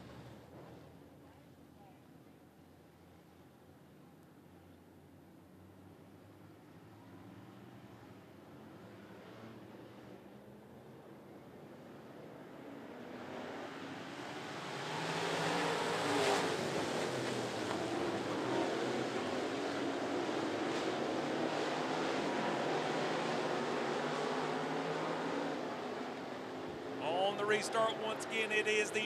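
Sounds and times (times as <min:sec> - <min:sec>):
race car engines: 0:00.0 - 0:02.2, 0:02.9 - 0:29.0.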